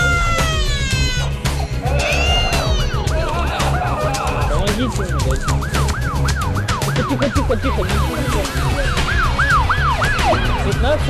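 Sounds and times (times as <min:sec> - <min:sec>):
music with heavy low beat: 0:00.0 - 0:11.0
siren in fast yelp: 0:04.2 - 0:11.0.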